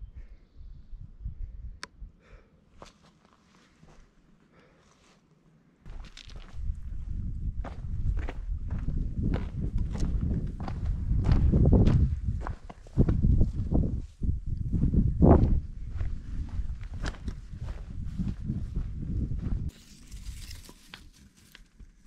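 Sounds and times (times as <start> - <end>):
footsteps on stony path: 2.8 - 4.1, 5.9 - 22.0
low microphone rumble: 6.4 - 19.7.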